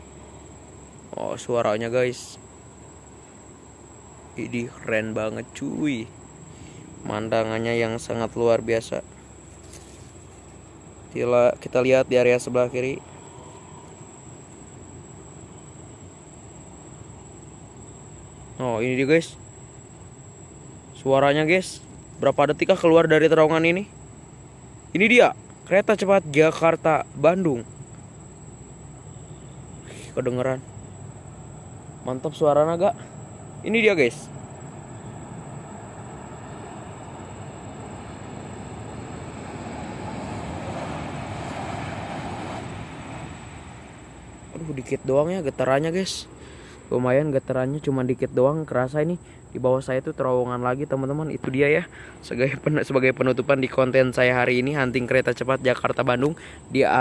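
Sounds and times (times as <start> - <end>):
insect drone: 0.0 - 57.0
high-speed train passing: 34.4 - 44.4.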